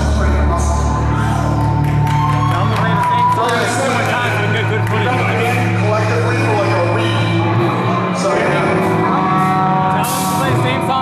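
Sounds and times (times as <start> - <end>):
distorted electric guitar chords: 4.4 - 11.0.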